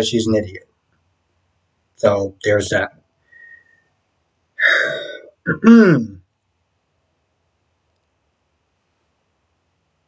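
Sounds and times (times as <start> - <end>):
man clearing his throat: 4.6 - 6.2.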